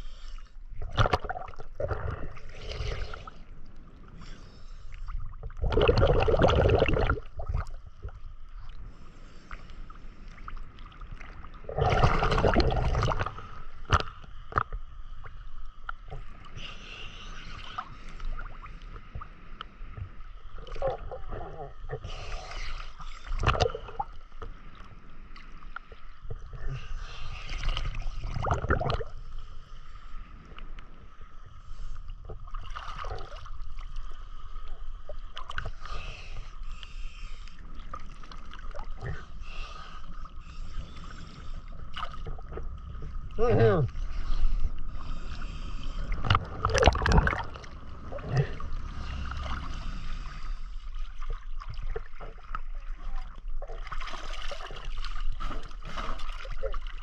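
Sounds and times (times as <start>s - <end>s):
water sloshing and splashing: 0.7s - 3.5s, 10.2s - 15.3s, 22.9s - 29.5s, 32.2s - 35.9s, 37.6s - 39.4s, 41.0s - 57.0s.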